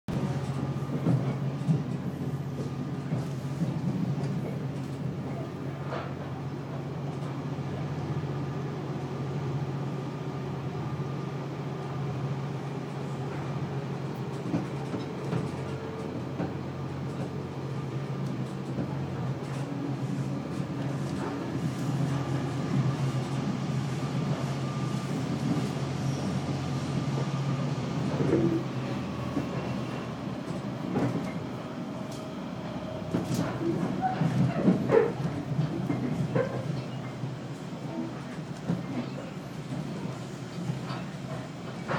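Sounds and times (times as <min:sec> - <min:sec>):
train clanks and rattles: 0:00.1 - 0:41.9
train running rumble: 0:00.1 - 0:41.9.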